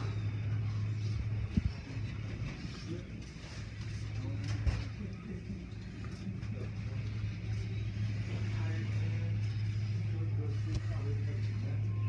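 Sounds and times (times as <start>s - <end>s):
machinery hum: 0.0s - 12.0s
spinning cloth brushes: 0.0s - 12.0s.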